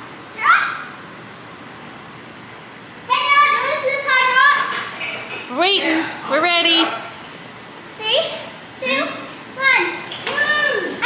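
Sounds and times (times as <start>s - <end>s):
room tone: 0.0s - 11.0s.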